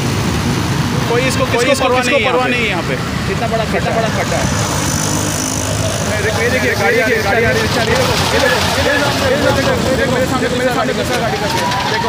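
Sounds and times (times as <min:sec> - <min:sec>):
rumble of passing vehicles: 0:00.0 - 0:12.0.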